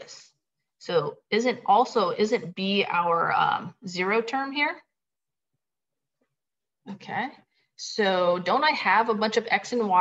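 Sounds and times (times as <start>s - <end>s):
woman's voice: 0.0s - 4.9s, 6.8s - 10.0s.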